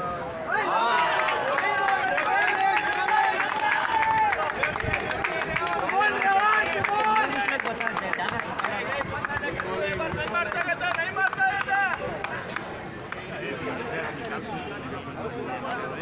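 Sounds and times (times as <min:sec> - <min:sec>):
people talking over each other: 0:00.0 - 0:16.0.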